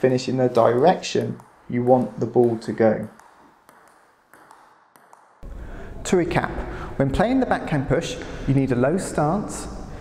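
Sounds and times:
table tennis ball clicks: 1.1s - 5.4s.

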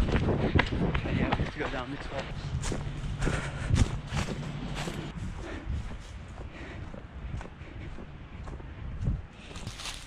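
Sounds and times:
running footsteps: 0.0s - 10.0s.

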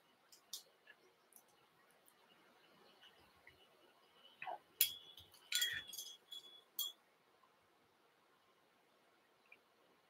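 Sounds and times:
metal tools clinking: 4.8s - 7.0s.

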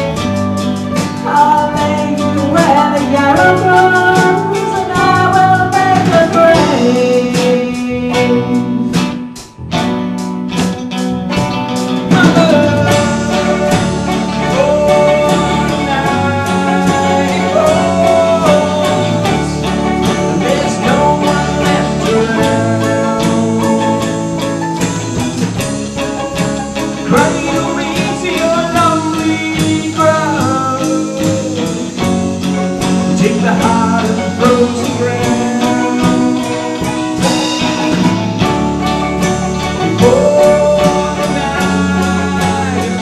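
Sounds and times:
electric guitars: 0.0s - 43.0s
steady drum beat: 0.0s - 43.0s.

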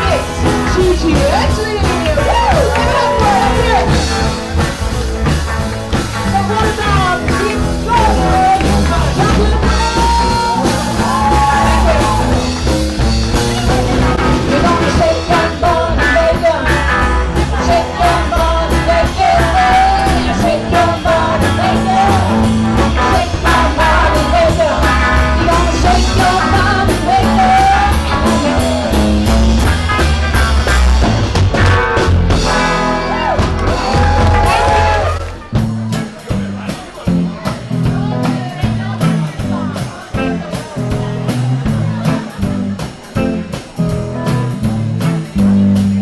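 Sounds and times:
bending lead guitar line: 0.0s - 46.0s
live blues-rock band playing: 0.0s - 46.0s.

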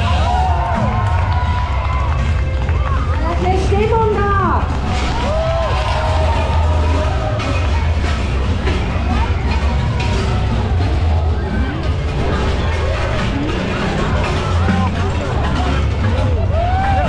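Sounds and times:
loud music with deep bass: 0.0s - 17.0s
spectators shouting and squealing: 0.0s - 17.0s.

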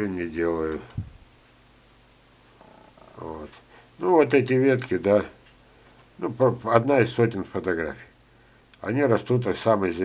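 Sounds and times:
man speaking: 0.0s - 1.0s, 3.0s - 5.4s, 6.2s - 8.2s, 8.8s - 10.0s.

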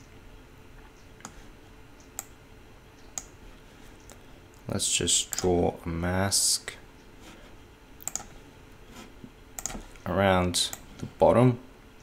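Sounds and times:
computer keyboard and mouse clicks: 8.0s - 8.3s, 9.6s - 10.0s.

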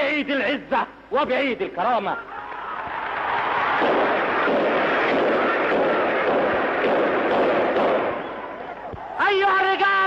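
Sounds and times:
crackly recording noise: 0.0s - 10.0s
crowd in uproar: 2.2s - 10.0s
gunshots: 3.7s - 8.5s.

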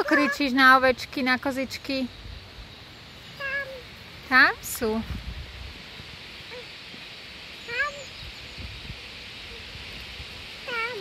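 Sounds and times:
toddler imitating sheep bleat: 0.0s - 0.5s.

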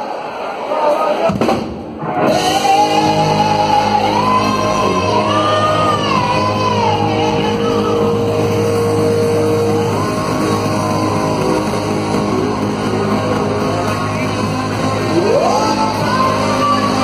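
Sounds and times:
live rock band playing: 1.4s - 17.0s
lead melody with bending notes: 2.4s - 17.0s.

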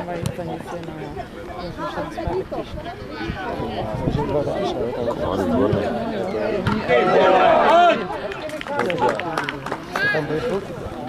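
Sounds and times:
voices shouting and calling: 1.1s - 11.0s.

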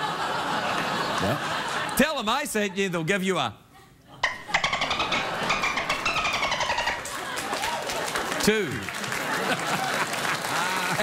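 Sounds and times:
man imitating dolphin squeals: 4.2s - 7.1s.

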